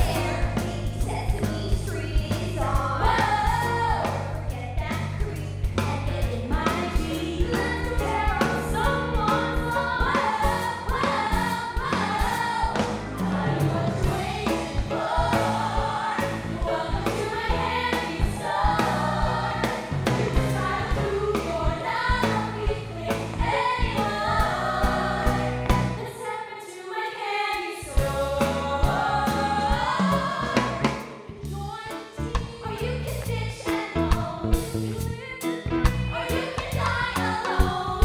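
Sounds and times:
women singing together: 0.0s - 34.4s, 36.0s - 38.0s
backing music with bass and beat: 6.7s - 26.0s.

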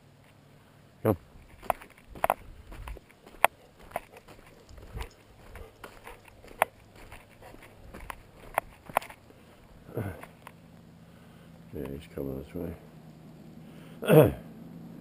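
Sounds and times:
footsteps on gravel: 1.4s - 10.5s.

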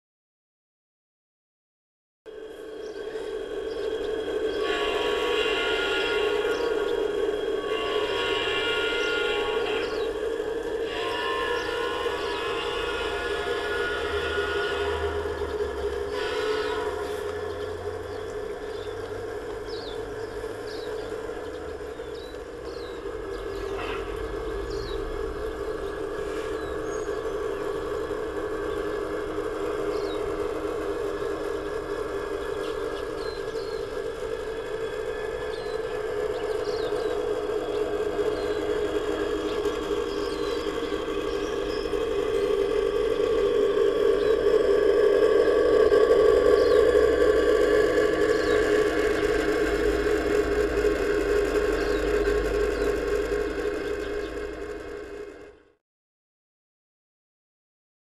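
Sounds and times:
model train motor whine: 2.3s - 55.8s.

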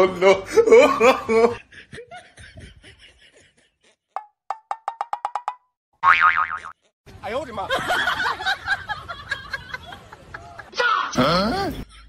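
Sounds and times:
loud wobbling boing: 6.0s - 6.8s.

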